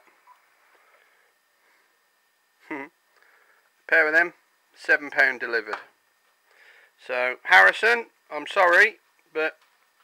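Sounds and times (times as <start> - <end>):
man speaking: 3.9 - 5.9.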